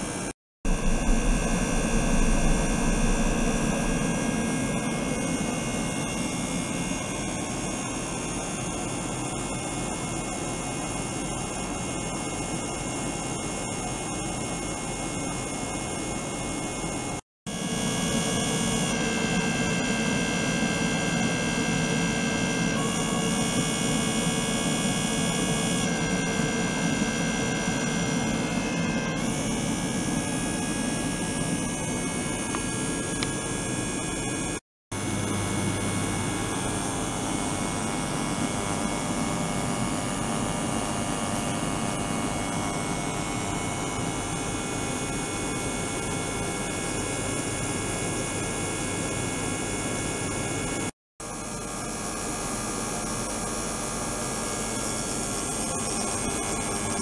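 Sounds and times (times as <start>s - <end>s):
electric water pump humming: 0.0s - 9.6s, 17.5s - 47.4s
high whining tones: 0.7s - 6.9s.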